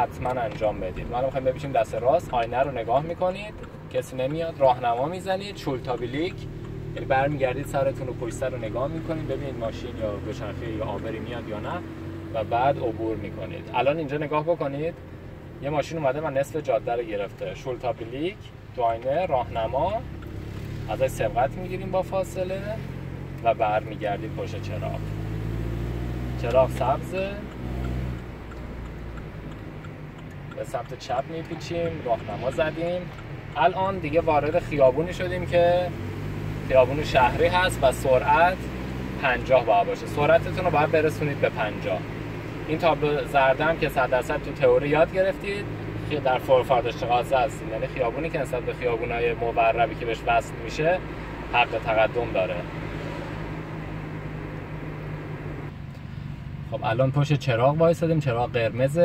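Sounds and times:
engine and road hum: 0.0s - 59.0s
turn signal ticking: 0.0s - 59.0s.

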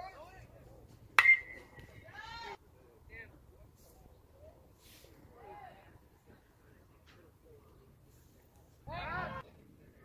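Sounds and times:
metal bat pinging a ball: 1.2s - 1.8s.

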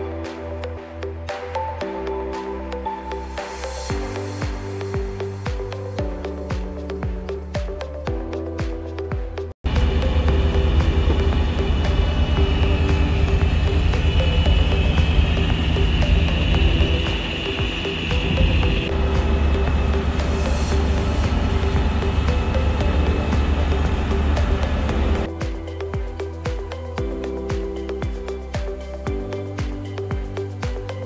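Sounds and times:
boat engine drone: 9.6s - 25.3s.

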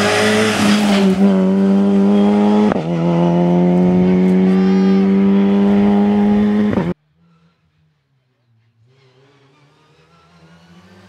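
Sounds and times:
rally car engine approaching: 0.0s - 11.0s.

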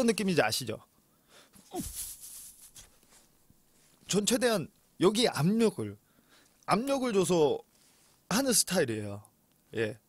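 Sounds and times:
airy hiss of breath: 1.3s - 2.7s.

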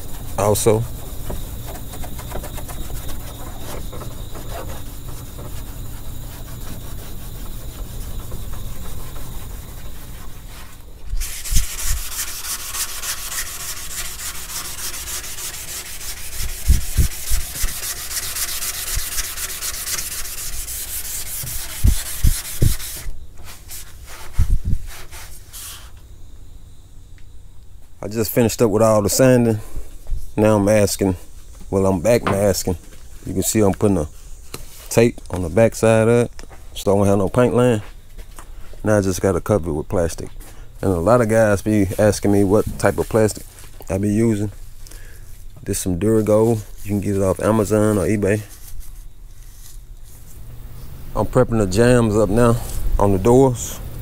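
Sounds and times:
scouring pad scrubbing metal: 0.0s - 23.0s
hand sanding a panel: 0.0s - 25.9s.

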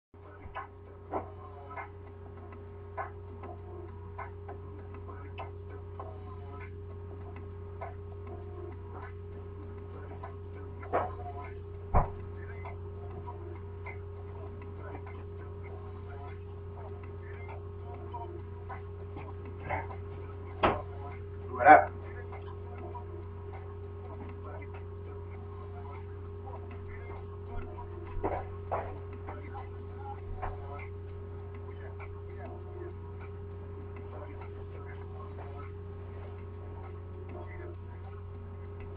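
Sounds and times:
low electrical hum: 0.2s - 38.9s.

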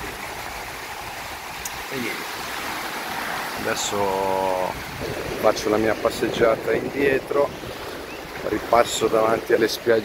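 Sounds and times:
small waves breaking on shore: 0.0s - 10.0s.

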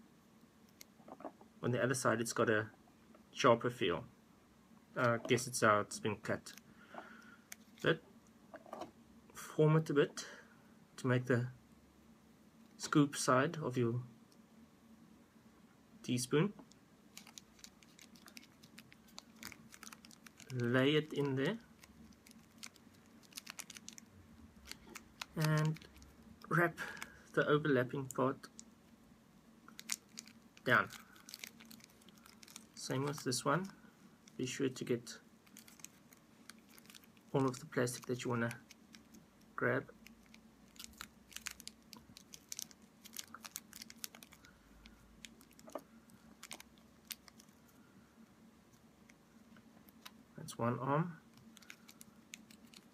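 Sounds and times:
thin plastic crinkling: 7.5s - 7.9s, 16.7s - 27.4s, 29.7s - 34.4s, 35.4s - 47.8s, 51.3s - 52.9s.

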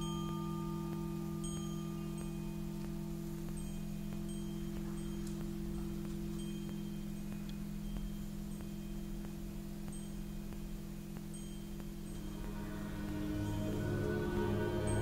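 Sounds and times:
wind chimes ringing: 0.0s - 9.2s, 11.3s - 15.0s
steady low drone: 12.0s - 15.0s.

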